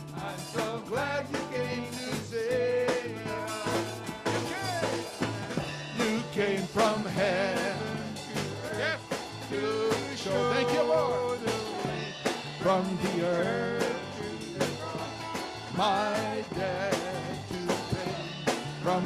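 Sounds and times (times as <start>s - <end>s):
bass guitar: 0.0s - 19.0s
drum kit beat: 0.0s - 19.0s
lead and backing vocals: 0.0s - 19.0s
worship band playing: 0.0s - 19.0s.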